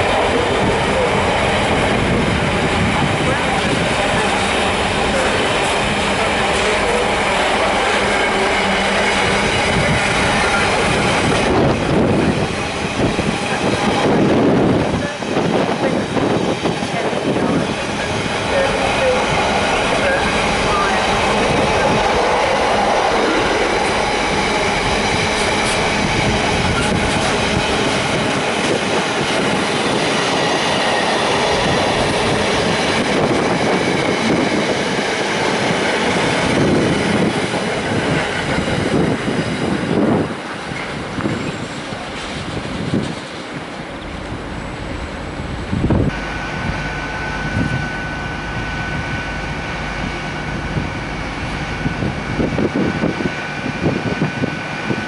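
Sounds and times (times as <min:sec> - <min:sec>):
train wheels rumbling and clattering: 0:00.0 - 0:46.8.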